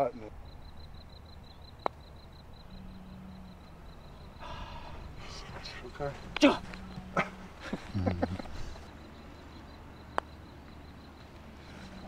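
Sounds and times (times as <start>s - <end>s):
breathy rush: 4.4s - 5.9s.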